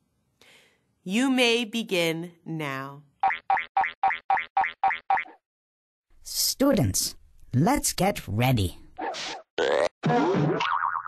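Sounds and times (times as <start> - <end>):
cartoon sound effects: 9.0 - 10.8.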